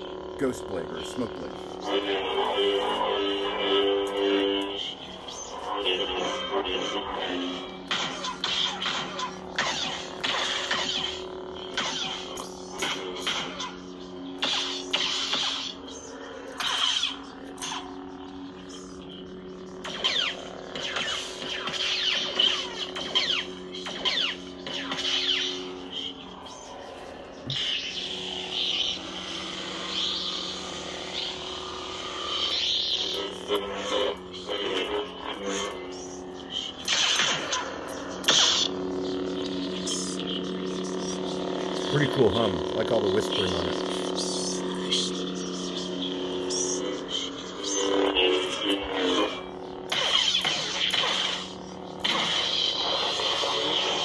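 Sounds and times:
lightsaber hum with whispering voices: 0.0s - 54.0s.

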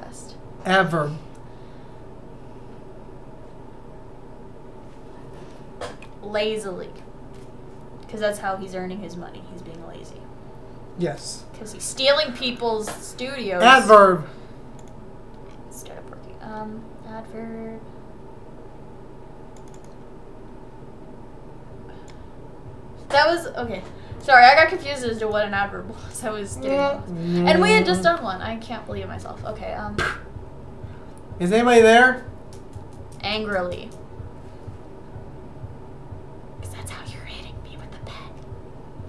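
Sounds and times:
steady background hum: 0.0s - 39.0s
person whispering: 27.0s - 27.9s.

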